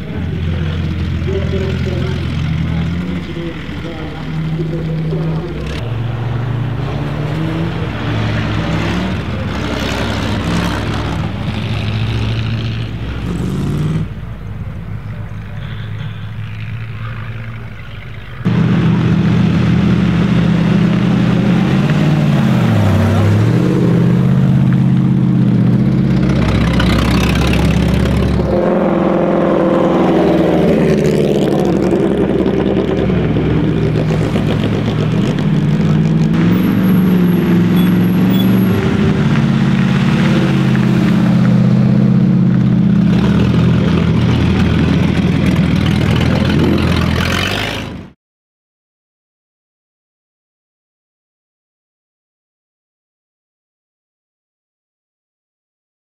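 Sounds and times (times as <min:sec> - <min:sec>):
car engines driving past: 0:00.0 - 0:48.2.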